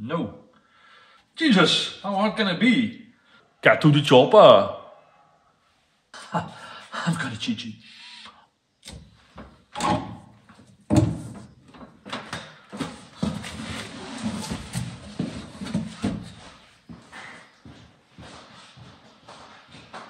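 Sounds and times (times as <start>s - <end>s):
bumps and thumps of person climbing: 8.9s - 20.0s.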